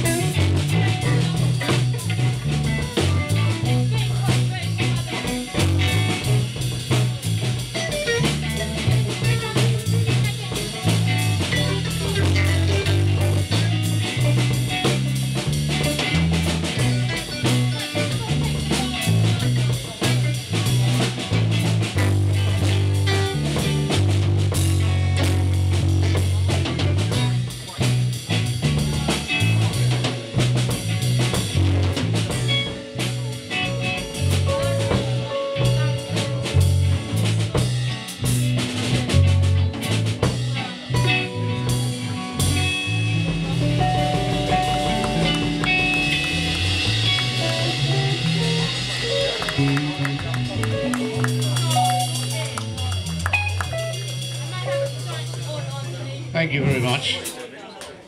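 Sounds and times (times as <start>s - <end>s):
bass line: 0.0s - 57.3s
drum kit: 0.0s - 57.4s
electric guitars: 0.0s - 57.4s.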